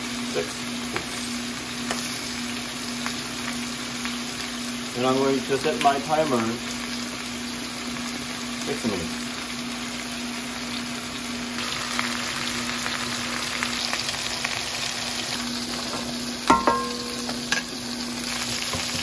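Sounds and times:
chicken sizzling in oil: 0:00.0 - 0:19.0.

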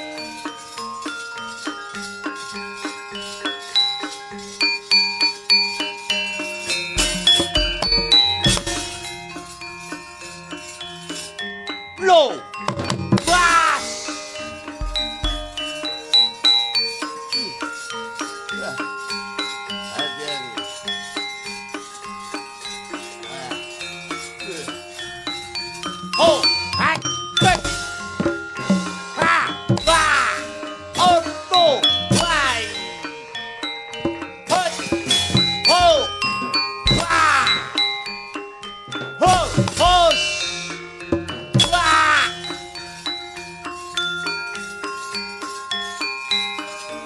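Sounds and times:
gamelan metallophones ringing: 0:00.0 - 0:47.0
sharp clattering strikes: 0:12.8 - 0:15.9
loud vocal cries: 0:36.9 - 0:37.8.

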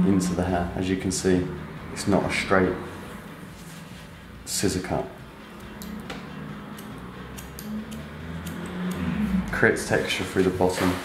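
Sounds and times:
scissors snipping hair: 0:05.6 - 0:09.6.

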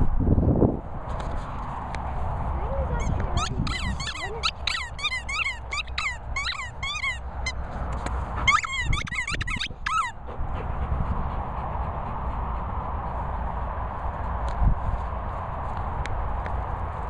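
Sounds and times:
rubber squeaky toy squeaking: 0:03.0 - 0:07.6, 0:08.4 - 0:10.2.

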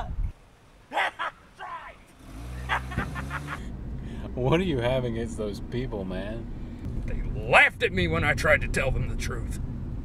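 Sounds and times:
car engine driving off: 0:02.1 - 0:07.3.

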